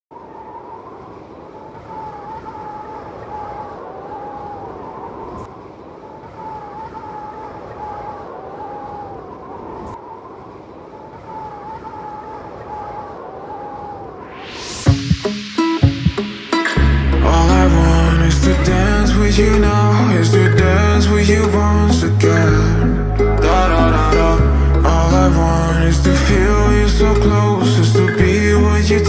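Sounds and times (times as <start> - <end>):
even rushing noise: 0.1 - 29.0.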